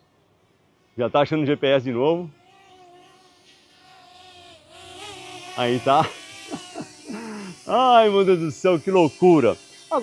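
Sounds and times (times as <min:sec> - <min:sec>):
drone propellers humming: 0:00.0 - 0:10.0.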